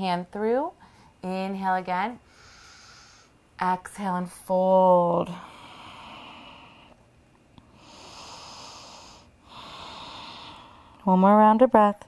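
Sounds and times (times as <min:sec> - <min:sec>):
person breathing deeply: 0:02.2 - 0:03.4, 0:05.3 - 0:07.0, 0:07.6 - 0:11.0.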